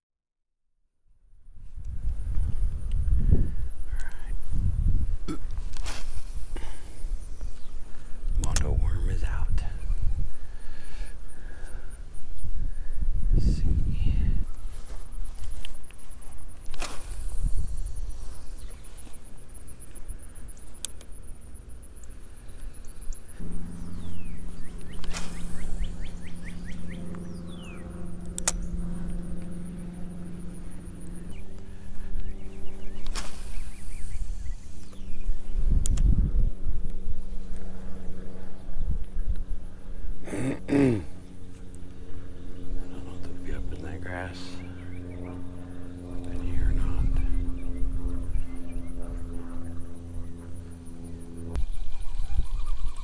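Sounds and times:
steady low hum: 0:01.0 - 0:53.0
wind gusts on microphone: 0:01.5 - 0:11.0, 0:11.7 - 0:15.9, 0:32.7 - 0:39.7, 0:46.3 - 0:49.3.

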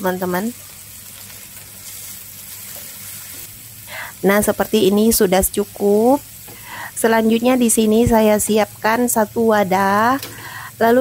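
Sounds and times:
onions sizzling in a frying pan: 0:00.0 - 0:11.0
spatula stirring in a pan: 0:00.6 - 0:03.6.

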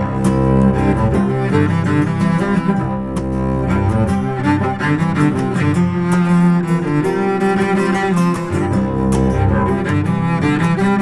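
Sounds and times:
bowed cello sustained notes: 0:00.0 - 0:11.0
plucked strings: 0:00.0 - 0:11.0.

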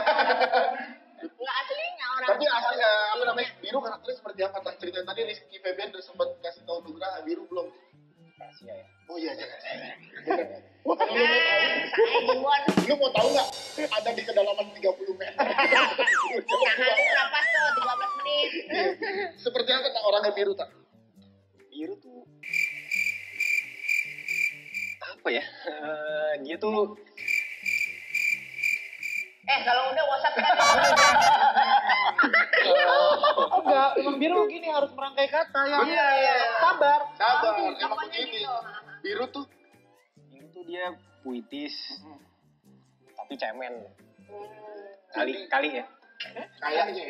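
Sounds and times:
laughter: 0:00.0 - 0:01.4, 0:09.4 - 0:12.4, 0:15.2 - 0:19.4, 0:30.1 - 0:34.0, 0:38.6 - 0:39.0, 0:46.2 - 0:46.6
soft background music: 0:00.0 - 0:47.0
cricket chirping: 0:22.4 - 0:25.0, 0:27.2 - 0:29.5
person speaking: 0:30.6 - 0:31.4
person wavering wordless vocal: 0:30.6 - 0:31.4.

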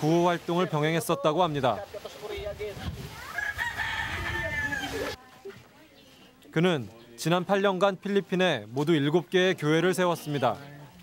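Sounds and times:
rooster crowing: 0:03.2 - 0:05.2.

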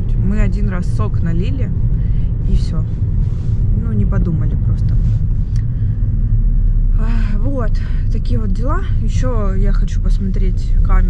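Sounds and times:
car rumble inside cabin: 0:00.0 - 0:11.0.

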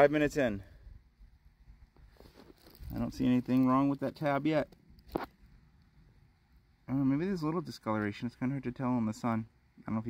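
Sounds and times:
man speaking: 0:02.9 - 0:04.7, 0:06.9 - 0:10.0.

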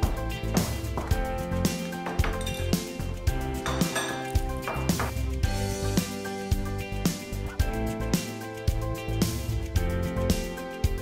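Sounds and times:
background music with steady beat: 0:00.0 - 0:11.0
bowls and spoons clinking: 0:02.0 - 0:05.2.

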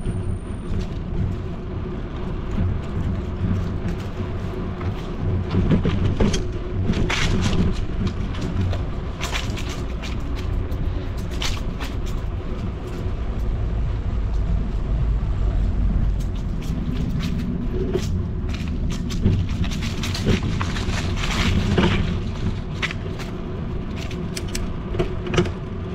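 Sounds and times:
low street rumble: 0:00.0 - 0:25.9.

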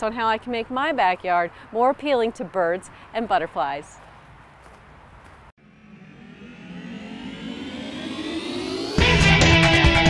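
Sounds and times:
rising tones: 0:05.6 - 0:10.0.

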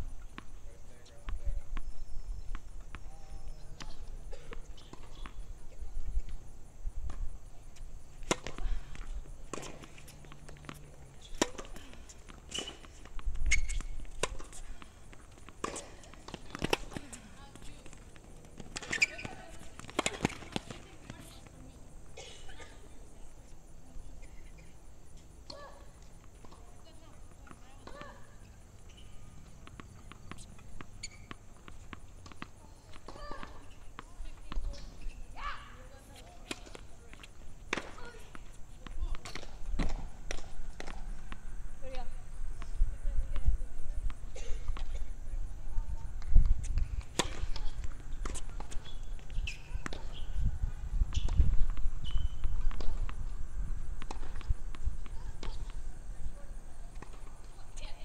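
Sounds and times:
tennis balls bouncing on court: 0:00.2 - 0:58.0
tennis balls struck by rackets: 0:01.2 - 0:05.6, 0:06.4 - 0:23.8, 0:25.2 - 0:35.1, 0:35.8 - 0:45.2, 0:46.2 - 0:57.8.

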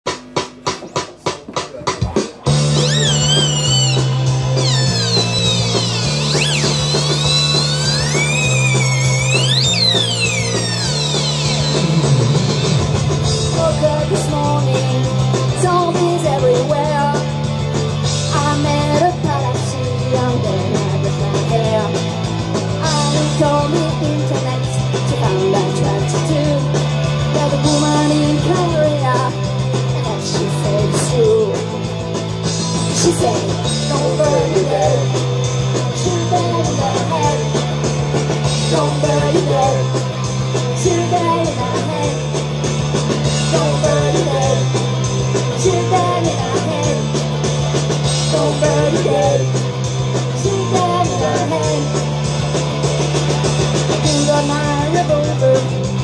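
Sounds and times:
live rock band playing: 0:00.1 - 0:56.0
electric guitar: 0:02.4 - 0:56.0
low bass line: 0:02.5 - 0:15.8.

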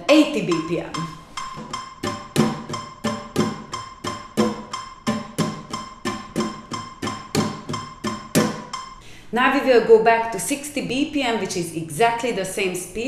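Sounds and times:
electronic metronome beeping: 0:00.1 - 0:09.0
nylon-string guitar strummed: 0:00.2 - 0:09.0.

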